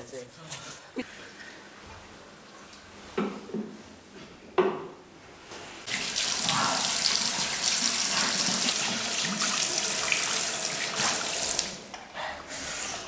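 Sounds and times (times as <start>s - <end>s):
tap water running into sink: 5.9s - 11.9s.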